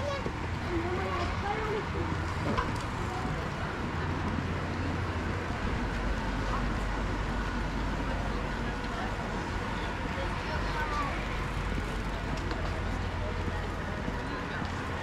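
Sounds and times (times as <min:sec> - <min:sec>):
indistinct voices of passers-by: 0:00.0 - 0:15.0
road traffic rumble: 0:00.0 - 0:15.0.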